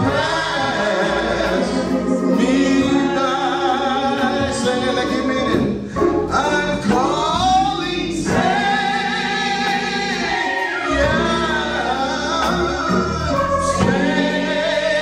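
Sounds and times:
organ accompaniment: 0.0s - 15.0s
voices singing a gospel hymn: 0.0s - 15.0s.

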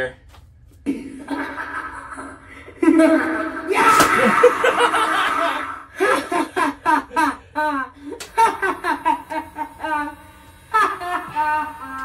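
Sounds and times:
toy cackling laugh through speaker: 1.2s - 12.0s.

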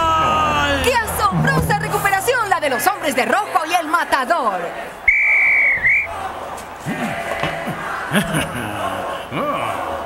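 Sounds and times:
referee's whistle blast: 5.1s - 6.1s.

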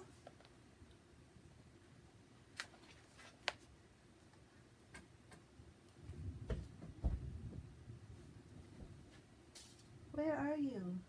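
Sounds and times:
book handling clicks: 2.6s - 3.7s
low rumbling bumps: 6.0s - 9.2s.

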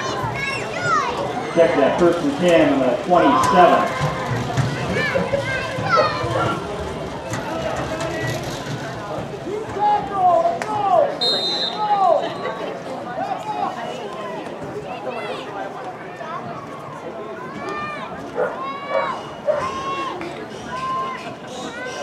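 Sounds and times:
crowd calling and shouting: 0.0s - 22.0s.

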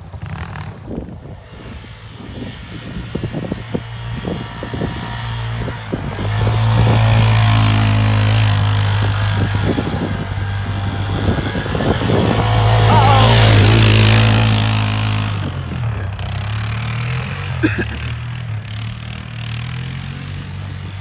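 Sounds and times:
atv engine revving: 0.0s - 21.0s
wheels spinning in snow: 0.0s - 21.0s.

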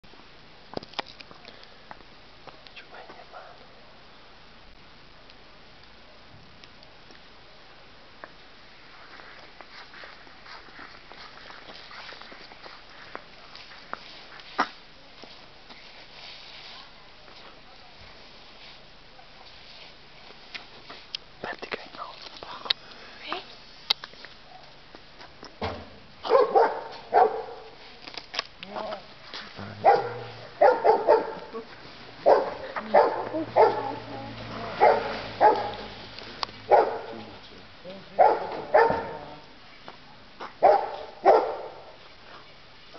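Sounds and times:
steady background hiss: 0.1s - 42.9s
person whispering: 2.6s - 3.7s, 21.4s - 23.4s
dog barking: 26.2s - 27.8s, 29.7s - 31.6s, 32.2s - 36.0s, 36.7s - 37.2s, 38.2s - 39.3s, 40.6s - 42.0s.

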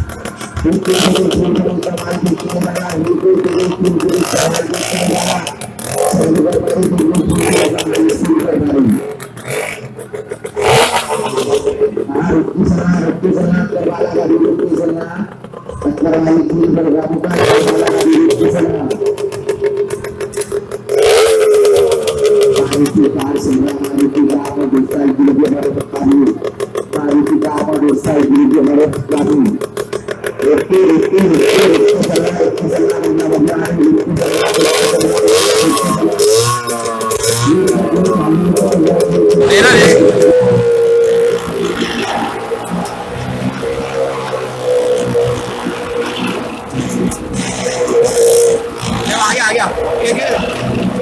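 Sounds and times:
motorcycle engine revving: 0.0s - 51.0s.

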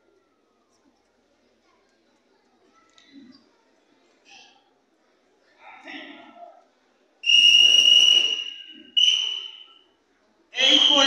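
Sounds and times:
referee's whistle blast: 7.2s - 9.8s, 10.6s - 11.0s.

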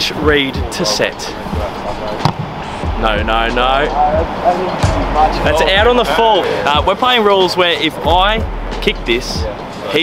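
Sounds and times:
boot kicking a football: 2.2s - 2.5s.

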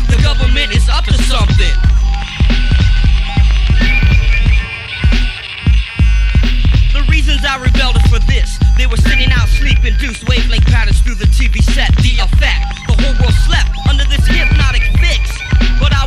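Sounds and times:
rapping over hip hop beat: 0.0s - 4.2s, 6.8s - 16.0s.

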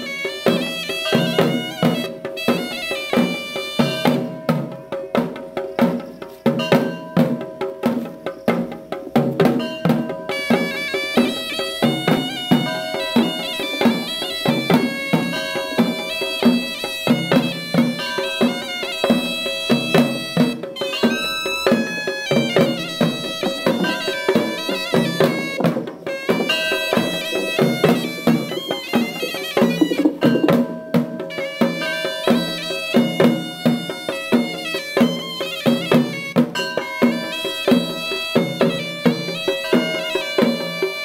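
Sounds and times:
shrill reed pipe melody: 0.0s - 4.8s, 9.7s - 41.0s
repeated drum beats: 0.0s - 41.0s.

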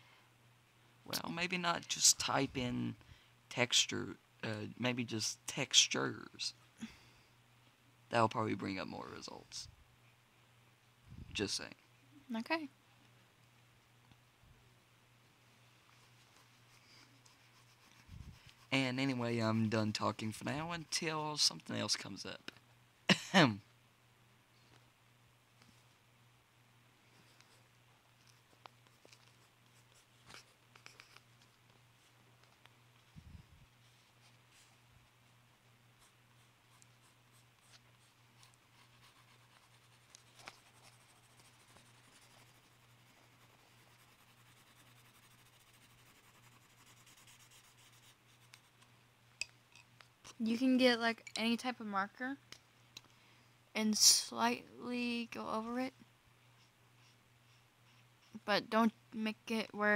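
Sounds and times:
low steady hum: 0.0s - 59.9s
pencil scratching on paper: 16.0s - 18.8s, 36.0s - 48.8s.

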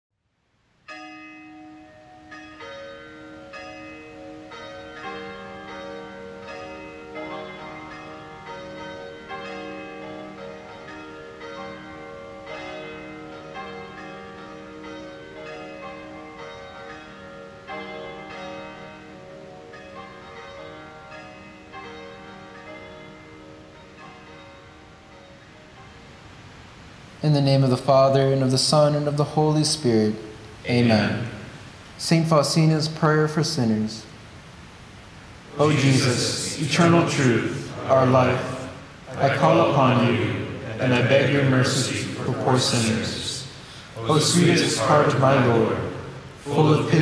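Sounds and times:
church bells ringing: 0.9s - 26.2s, 35.5s - 47.0s.

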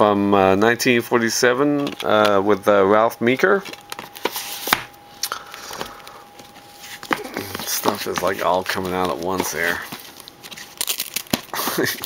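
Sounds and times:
plastic cases clacking: 1.8s - 2.4s, 5.7s - 12.0s.

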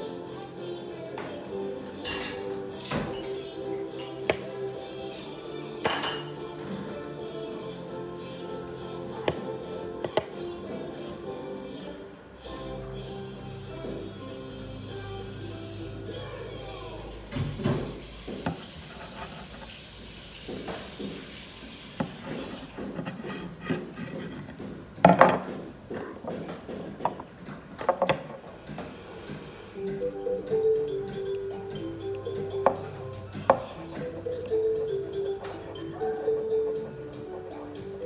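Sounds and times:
background music: 0.0s - 18.2s, 28.9s - 38.0s
cloth rubbing on wood: 17.9s - 24.6s.

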